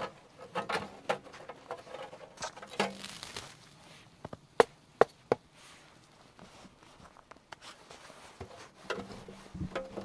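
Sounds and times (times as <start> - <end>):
wood fire crackling: 2.1 - 4.6
sharp pops from fire: 2.4 - 3.8.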